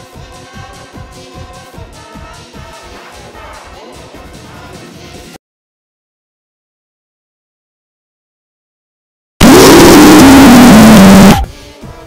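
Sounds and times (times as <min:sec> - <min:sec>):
distorted blast of noise: 0:09.4 - 0:11.5
tone stepping down in pitch: 0:09.4 - 0:11.5.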